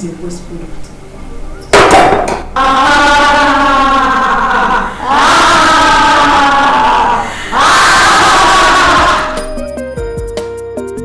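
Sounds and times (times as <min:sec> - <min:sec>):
woman's long laughing cry: 0:02.6 - 0:09.5.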